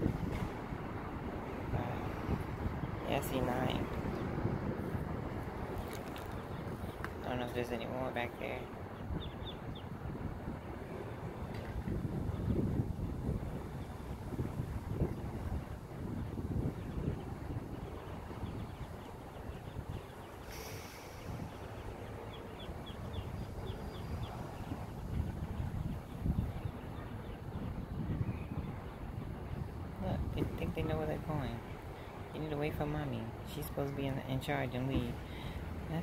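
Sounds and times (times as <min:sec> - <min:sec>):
wind buffeting microphone: 0:00.0 - 0:36.0
ducklings peeping: 0:08.4 - 0:09.9.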